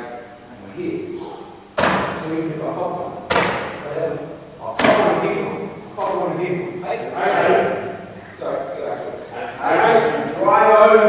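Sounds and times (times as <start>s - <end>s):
sharp thuds echoing in hall: 1.1s - 6.8s.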